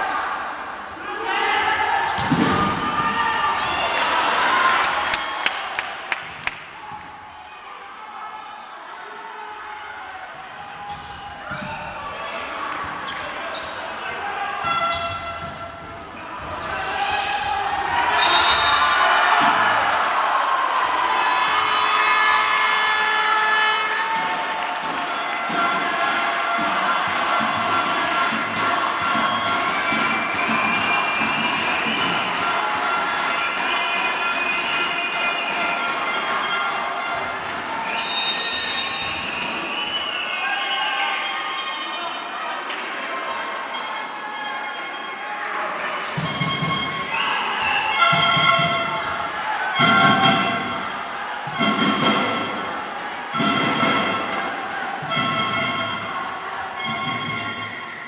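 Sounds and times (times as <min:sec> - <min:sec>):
crowd shouting and cheering: 0:00.0 - 0:58.0
high whistle blast: 0:18.2 - 0:19.0.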